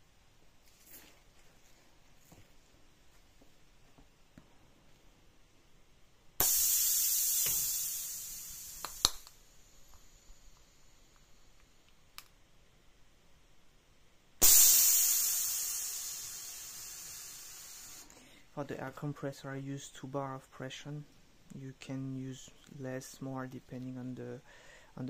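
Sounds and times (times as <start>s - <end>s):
sharp valve click: 6.4s - 10.0s, 14.4s - 18.2s
compressed air hissing: 6.4s - 11.6s, 14.4s - 18.4s.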